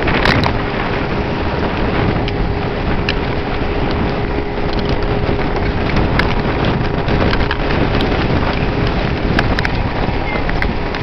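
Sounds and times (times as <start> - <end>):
outboard motor drone: 0.0 - 11.0
water rushing and spattering: 0.0 - 11.0
wind buffeting microphone: 0.0 - 11.0.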